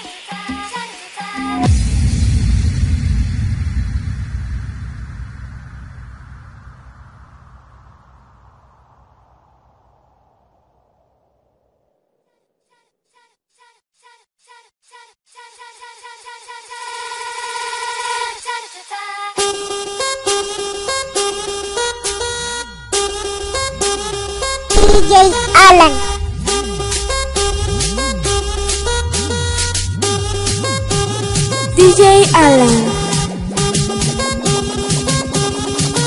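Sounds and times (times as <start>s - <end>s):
deep bass boom: 1.7s - 7.6s
house dance music: 24.7s - 26.2s, 30.7s - 36.0s.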